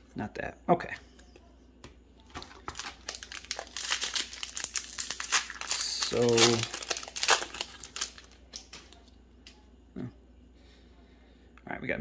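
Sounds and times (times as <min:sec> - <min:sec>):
cards rustling and clicking: 0:02.3 - 0:09.0
foil wrapper crinkling: 0:02.3 - 0:09.0.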